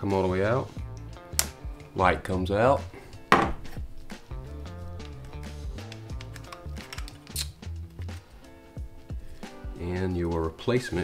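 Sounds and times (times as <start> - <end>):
background music with bass line: 0.0 - 11.0
sharp click: 1.3 - 1.6
plastic and metal clicks: 5.0 - 7.5.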